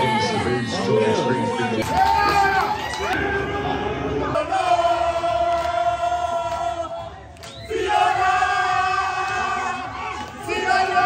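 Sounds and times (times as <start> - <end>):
crowd chanting: 0.0 - 11.0.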